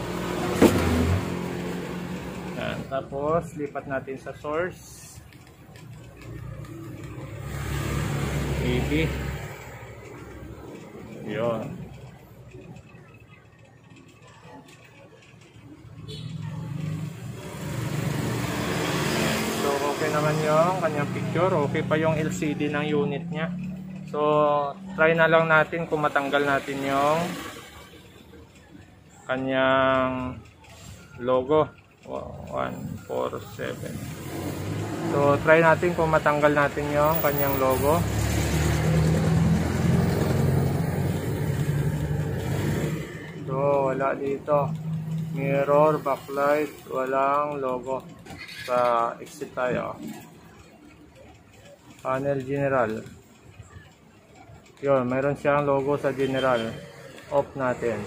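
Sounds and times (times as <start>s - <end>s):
vehicle engine rumbling: 0.0s - 58.0s.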